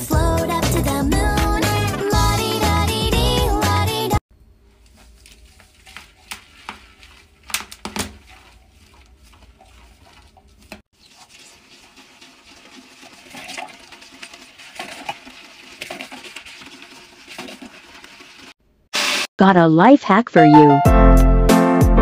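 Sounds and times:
toilet brush scrubbing bowl: 0.0 - 3.7, 4.7 - 19.2.

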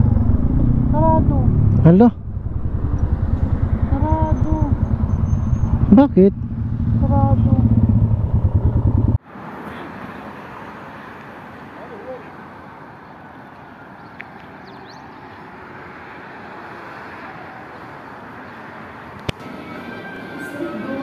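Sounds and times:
motorcycle engine running: 0.0 - 9.2.

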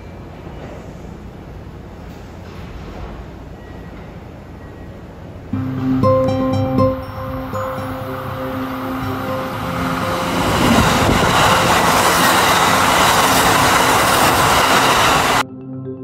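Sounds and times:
electric train passing: 3.3 - 15.4.

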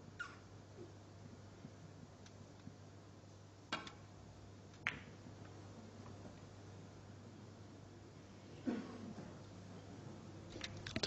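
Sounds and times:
snooker ball clicks: 3.7 - 4.0, 4.7 - 5.2.

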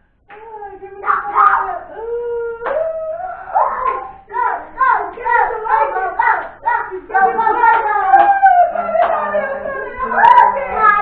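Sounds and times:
adults and children singing: 0.3 - 11.0
hands clapping: 2.6 - 2.9, 3.8 - 4.1, 5.1 - 9.4.

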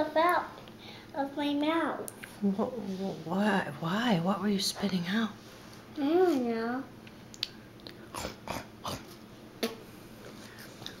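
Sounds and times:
child chewing crackers: 10.2 - 11.0.

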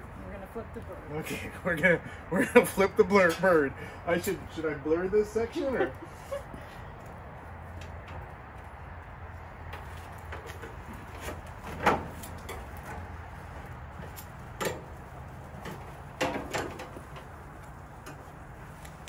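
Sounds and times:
steady low rumble: 0.0 - 19.0
utensils clanking on grill grate: 2.6 - 4.4, 9.7 - 13.1, 14.1 - 17.4.

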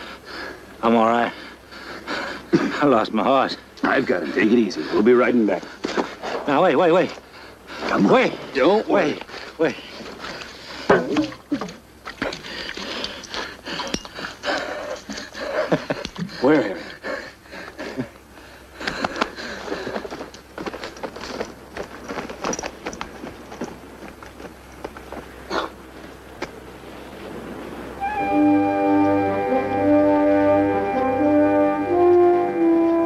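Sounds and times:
men grunting and breathing hard: 0.0 - 2.9, 10.0 - 21.1
scuffs and knocks on rocks: 18.9 - 25.8.

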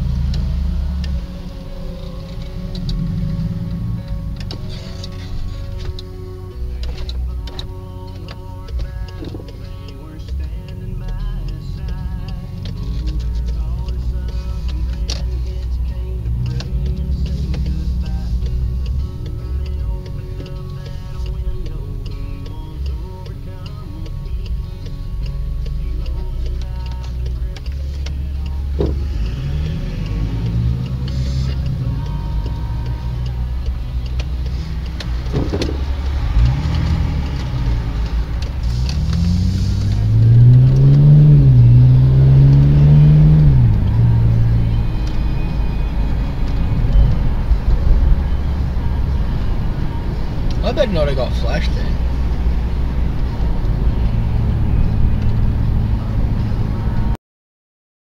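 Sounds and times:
car engine accelerating: 0.0 - 57.2
road noise inside car: 0.0 - 57.2.

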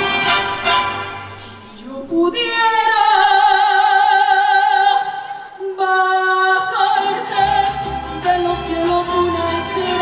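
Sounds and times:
mariachi band playing: 0.0 - 1.8, 7.0 - 10.0.

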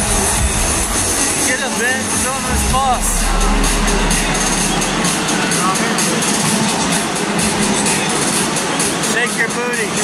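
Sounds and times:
dance music over pa system: 0.0 - 8.9
crowd din of voices: 0.0 - 10.0.

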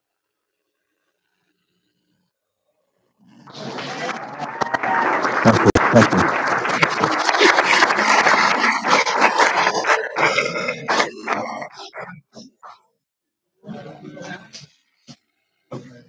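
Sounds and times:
voices: 3.3 - 12.8, 13.6 - 14.8, 15.7 - 16.0
crowd applauding: 3.4 - 12.0.

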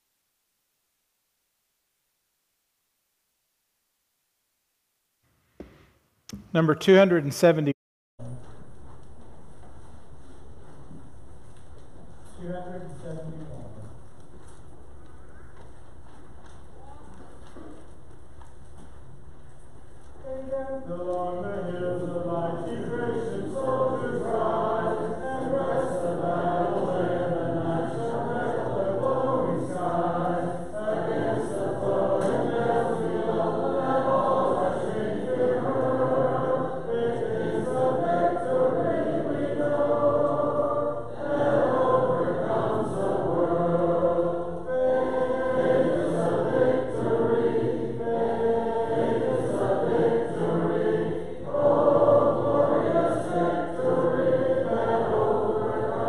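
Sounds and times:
congregation singing a hymn: 20.2 - 56.0.

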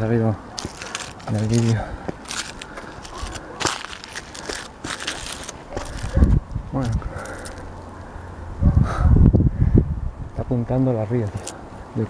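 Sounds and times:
footsteps crunching on dry brush: 0.5 - 7.7.

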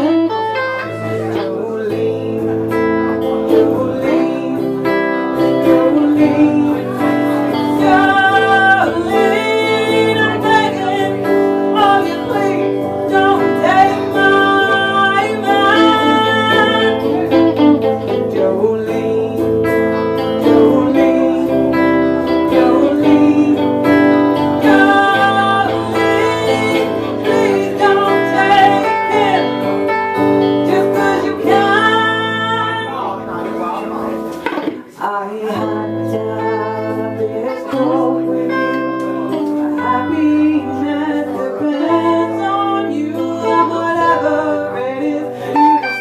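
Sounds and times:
woman singing: 0.0 - 33.2, 34.7 - 46.0
acoustic guitar: 0.0 - 46.0
electric guitar: 0.0 - 46.0.

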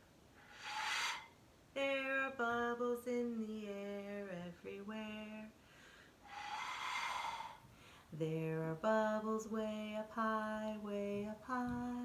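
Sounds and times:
breathy blow through bubble wand: 0.4 - 1.3, 6.2 - 7.7
woman singing: 1.8 - 5.6, 8.1 - 12.0.

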